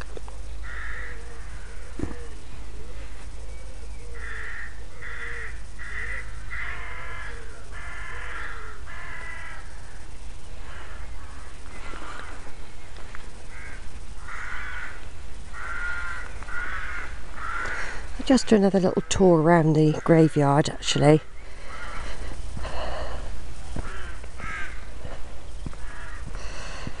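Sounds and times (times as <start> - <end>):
crows cawing: 0.6 - 2.4, 4.1 - 12.6, 13.4 - 18.2, 21.4 - 27.0
steady low rumble: 8.6 - 27.0.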